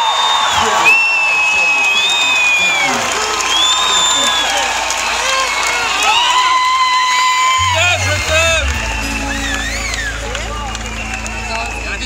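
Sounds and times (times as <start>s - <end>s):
long whistle: 0.0s - 4.7s, 7.1s - 12.0s
audience cheering and whistling: 0.0s - 12.0s
low guitar note: 7.6s - 12.0s.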